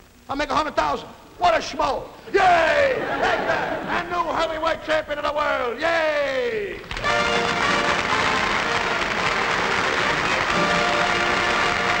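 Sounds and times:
studio audience applauding: 6.8s - 12.0s.

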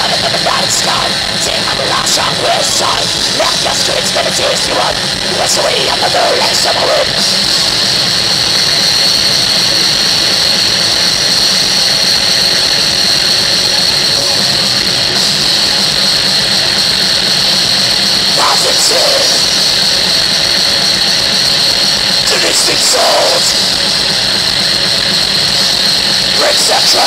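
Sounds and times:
metal band playing live: 0.0s - 8.7s, 13.6s - 27.0s.

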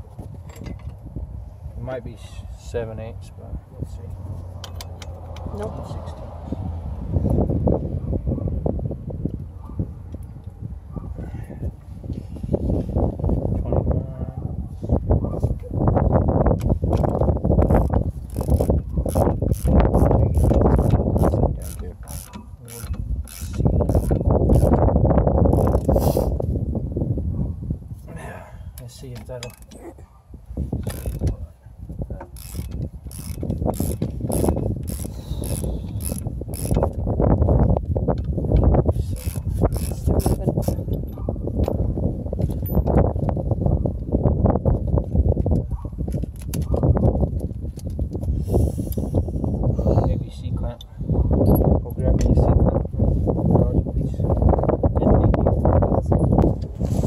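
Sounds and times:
ratchet wrench clicking: 17.6s - 24.8s, 30.8s - 31.3s, 32.3s - 36.9s, 39.2s - 40.8s.

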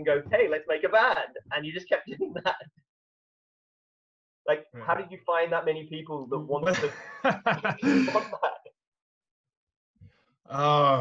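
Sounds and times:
man talking: 4.5s - 8.6s, 10.5s - 11.0s
man laughing: 6.6s - 8.7s.

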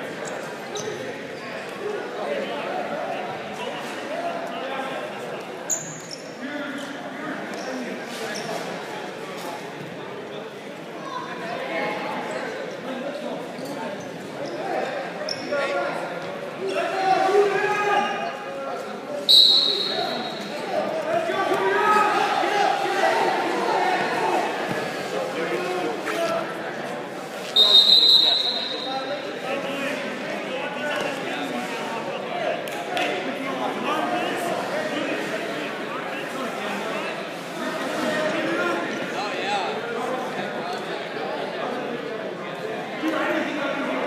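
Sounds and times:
voices calling out in gym: 0.0s - 44.0s
referee's whistle blasts: 19.3s - 20.5s, 27.6s - 29.1s.

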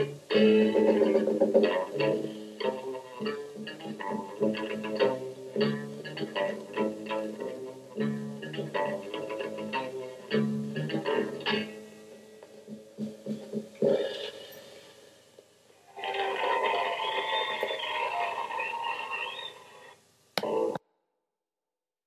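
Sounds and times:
bass guitar: 0.0s - 11.9s
electric guitar riff: 0.0s - 14.8s.

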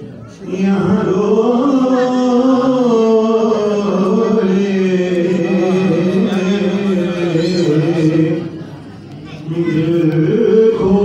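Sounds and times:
man singing unaccompanied: 0.3s - 8.7s, 9.3s - 11.0s.

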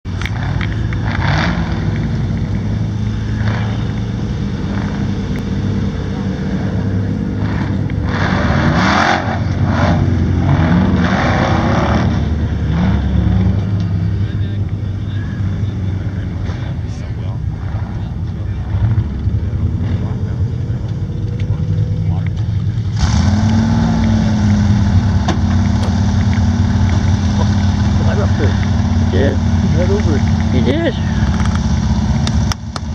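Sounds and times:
off-road vehicle engine revving: 0.1s - 32.9s.

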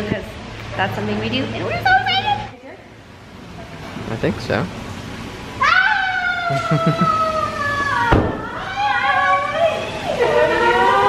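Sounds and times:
woman squealing: 5.6s - 10.2s.

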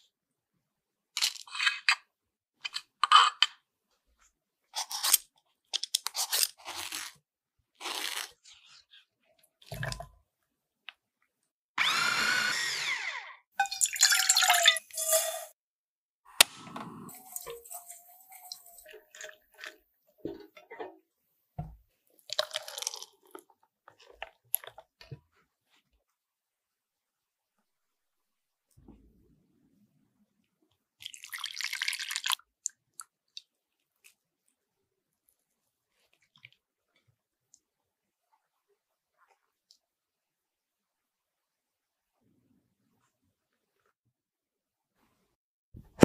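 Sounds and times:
tray and bowl being handled: 16.6s - 21.0s.

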